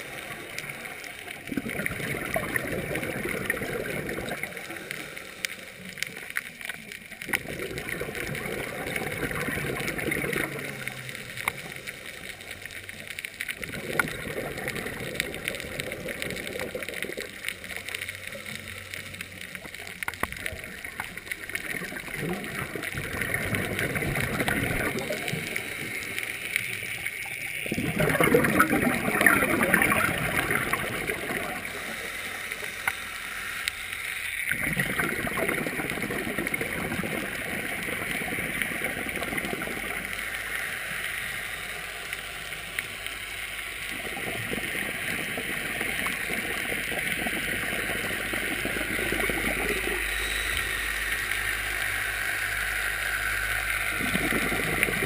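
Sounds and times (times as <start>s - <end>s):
air bubbling from regulator underwater: 0.0s - 5.2s, 7.2s - 12.4s, 13.6s - 17.6s, 20.2s - 32.2s, 34.5s - 40.5s, 43.9s - 50.8s, 53.0s - 55.0s
steady hiss: 0.0s - 55.0s.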